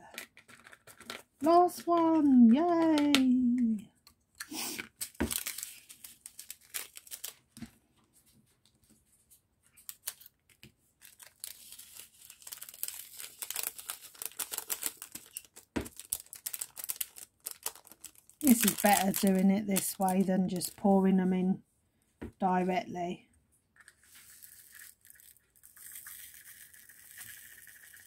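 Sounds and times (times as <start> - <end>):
plastic bag crinkling: 4.6 - 7.5, 9.8 - 20.9, 23.8 - 28.0.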